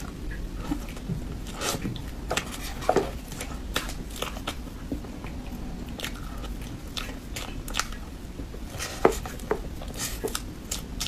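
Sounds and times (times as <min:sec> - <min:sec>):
wet chewing mouth sounds: 0:00.0 - 0:11.0.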